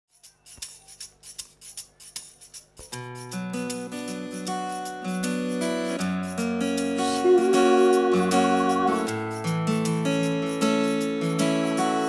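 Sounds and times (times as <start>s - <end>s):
shaker rattling an even beat: 0.1s - 12.0s.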